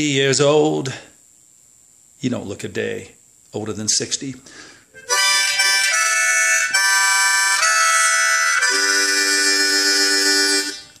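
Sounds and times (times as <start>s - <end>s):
harmonica chord: 4.5s - 11.0s.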